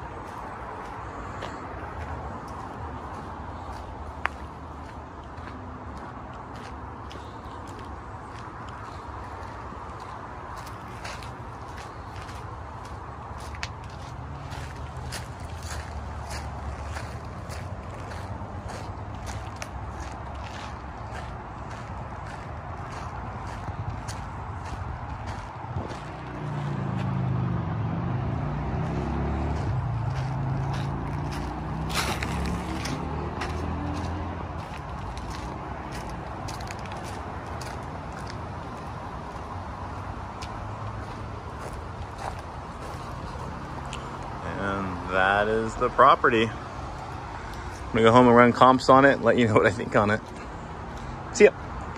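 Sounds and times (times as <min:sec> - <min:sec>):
footsteps on gravel: 0:00.0 - 0:27.2, 0:28.7 - 0:51.7
freeway traffic hum: 0:00.0 - 0:51.9
vehicle engine passing: 0:00.0 - 0:51.9.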